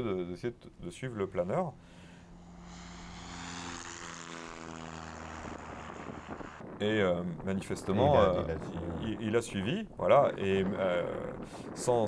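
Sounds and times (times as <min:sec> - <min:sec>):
propeller aircraft engine: 0:01.7 - 0:06.8.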